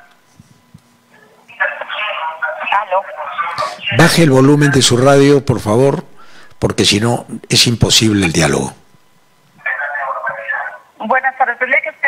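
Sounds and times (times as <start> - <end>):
faint line hum: 0.0 - 11.0
voice over telephone line: 1.5 - 6.0
radio feedback: 1.5 - 8.7.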